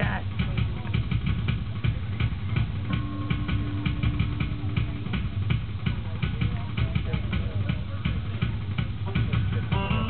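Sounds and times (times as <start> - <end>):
drum kit fast beat: 0.0 - 10.0
held instrument note: 9.7 - 10.0.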